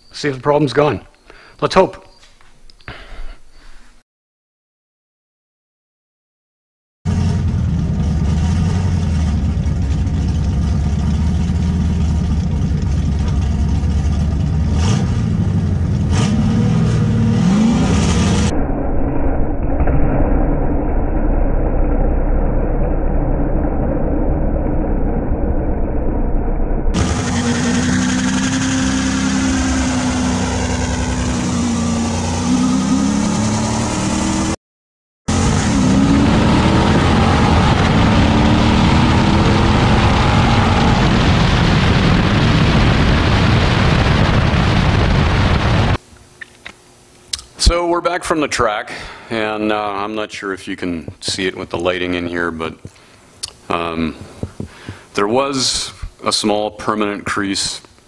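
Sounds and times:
car engine revving and launching: 7.1 - 12.5, 13.1 - 34.6, 35.3 - 46.0.

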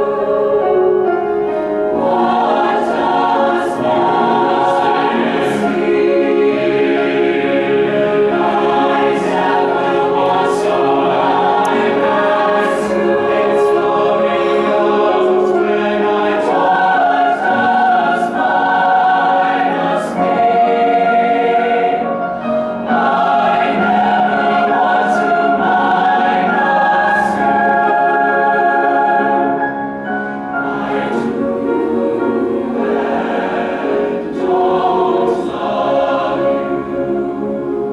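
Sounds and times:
choir singing sustained chords: 0.0 - 37.9.

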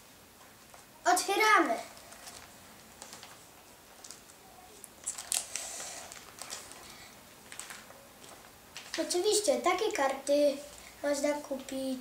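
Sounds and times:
plastic pages crinkling: 1.8 - 10.0.

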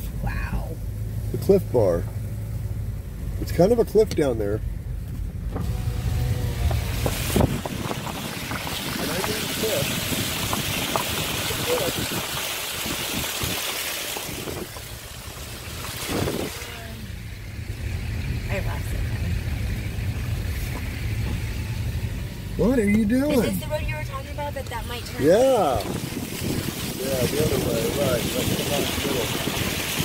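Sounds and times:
car interior road rumble: 0.0 - 30.0.

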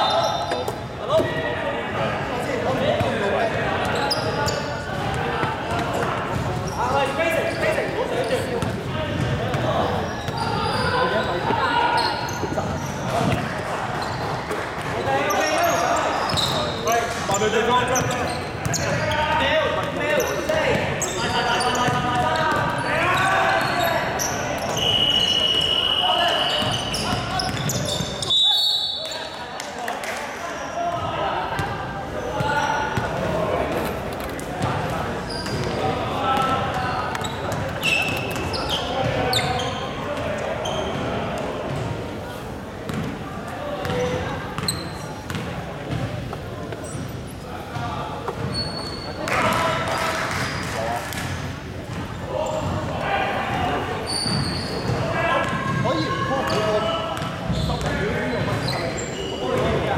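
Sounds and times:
players calling out: 0.0 - 29.4
referee's whistle: 24.6 - 29.3
basketball bouncing on wooden court: 42.9 - 43.2, 44.6 - 46.1.

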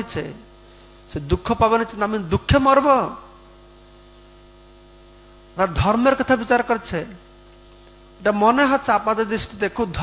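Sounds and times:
voice: 0.0 - 0.4, 1.1 - 3.3, 5.6 - 7.2, 8.2 - 10.0
electrical mains hum: 0.0 - 10.0.

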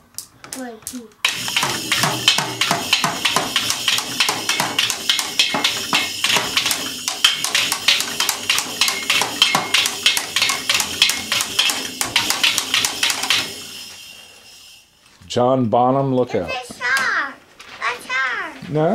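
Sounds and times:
toy drum kit beaten with drumsticks: 0.0 - 13.9
thin cymbal ringing: 1.2 - 15.0.

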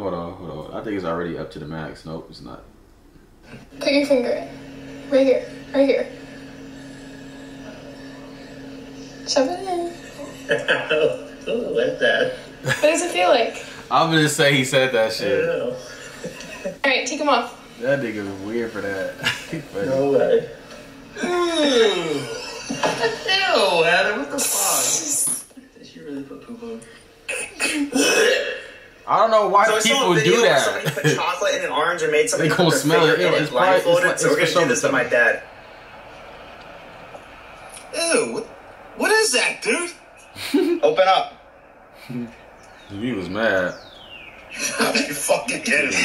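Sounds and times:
steady low hum: 0.0 - 46.0
man clearing his throat: 10.6 - 11.2, 27.3 - 28.8
faint hiss: 33.8 - 46.0.

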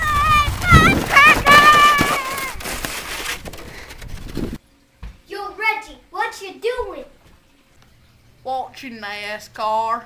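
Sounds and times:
sled sliding over snow: 0.0 - 4.6.

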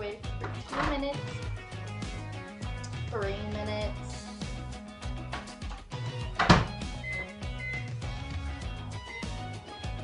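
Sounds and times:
background music: 0.0 - 10.0
microwave door shutting: 6.4 - 6.9
microwave keypad beeps: 6.9 - 8.0.

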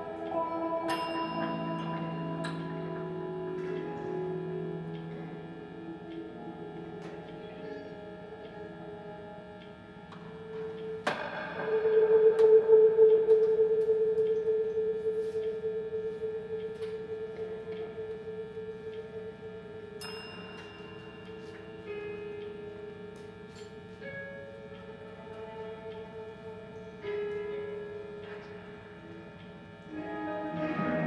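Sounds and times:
electric guitar drone music: 0.0 - 31.0.

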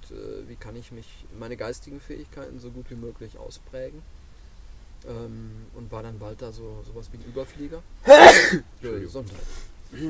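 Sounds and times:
man coughing: 8.1 - 8.6.

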